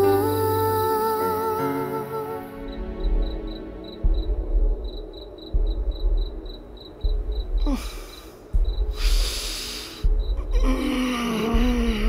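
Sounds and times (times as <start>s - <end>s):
crickets chirping: 1.8s - 12.0s
deep bass pulse: 2.7s - 12.0s.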